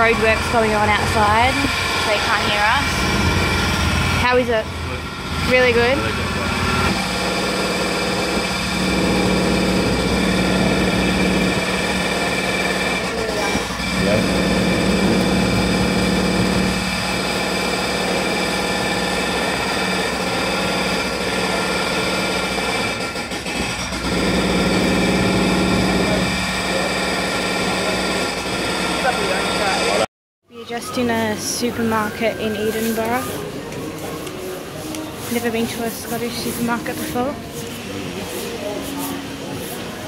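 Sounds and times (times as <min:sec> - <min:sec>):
machinery engine droning: 0:00.0 - 0:30.1.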